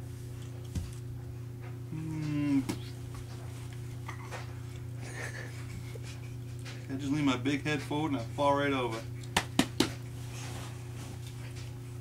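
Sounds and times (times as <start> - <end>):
person's low drawn-out vocal sound: 1.9 - 2.8.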